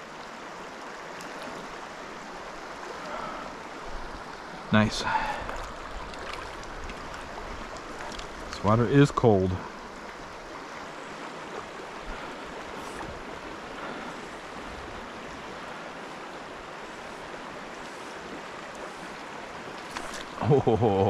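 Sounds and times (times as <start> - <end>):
stream running over rocks: 0.0 - 21.0.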